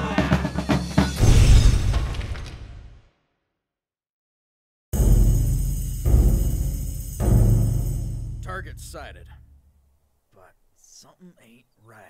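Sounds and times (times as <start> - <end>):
deep booming drum hits: 1.1 - 2.4, 5.0 - 9.5
sustained high ringing: 5.0 - 9.6.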